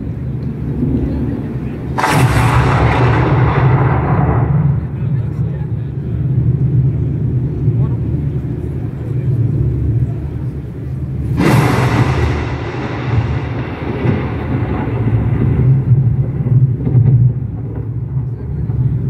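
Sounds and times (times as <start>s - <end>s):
deep low rumble: 0.0s - 19.0s
loud burst of noise: 0.0s - 19.0s.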